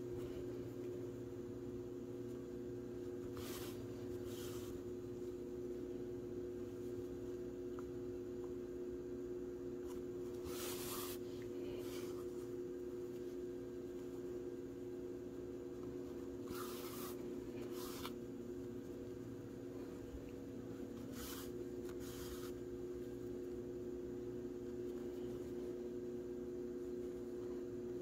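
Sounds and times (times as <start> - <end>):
steady low hum: 0.0 - 28.0
yarn swishing through fabric: 3.1 - 5.0, 10.4 - 12.5, 16.4 - 18.2, 20.9 - 22.7.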